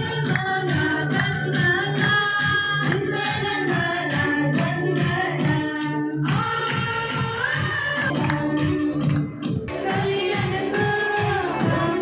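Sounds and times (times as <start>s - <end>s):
women singing together: 0.0s - 12.0s.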